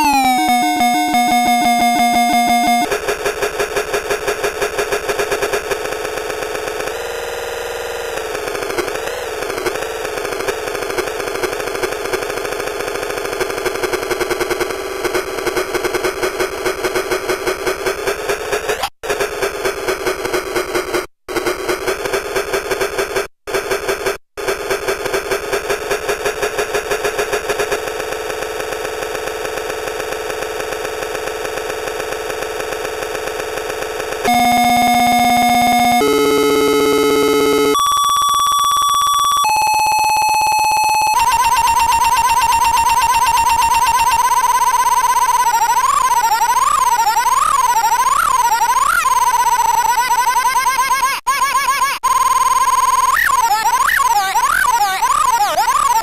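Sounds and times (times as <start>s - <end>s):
glitchy electronic tones: 0.0s - 2.9s, 34.3s - 37.9s.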